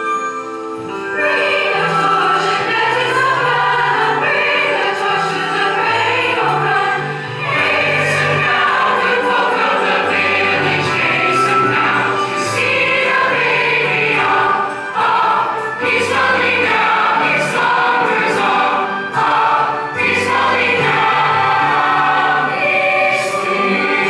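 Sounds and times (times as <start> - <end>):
choir singing in harmony: 0.6 - 24.0.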